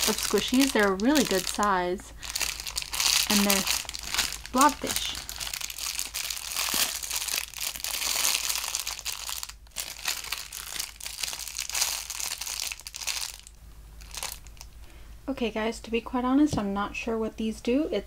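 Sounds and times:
plastic wrapper crinkling: 0.0 - 14.8.

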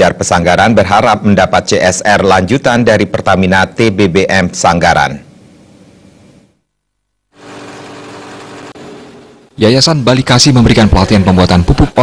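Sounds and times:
shredder engine running: 7.4 - 9.4.

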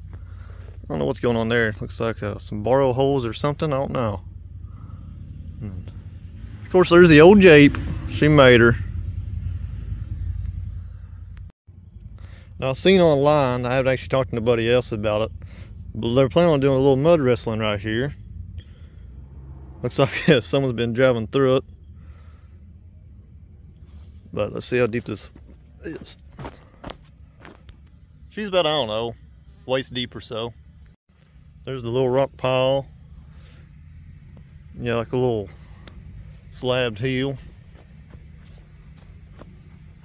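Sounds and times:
low outdoor rumble: 0.0 - 40.0
footsteps on loose rock and dirt: 23.8 - 28.1, 36.7 - 40.0.

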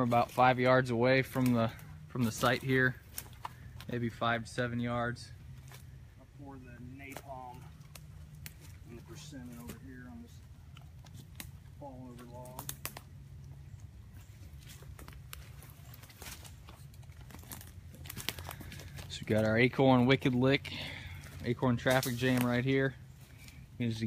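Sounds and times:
light crackles and rustles: 0.0 - 4.1, 4.8 - 6.2, 6.8 - 24.0.

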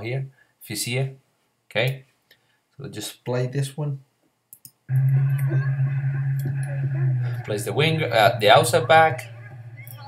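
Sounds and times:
loud low hum with higher tone: 4.9 - 10.0.

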